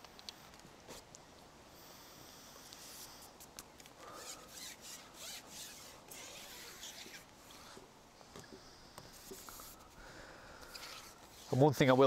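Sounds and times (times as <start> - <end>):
fishing pole rubbing and rasping: 4.1 - 7.9, 8.5 - 10.0, 10.7 - 11.7.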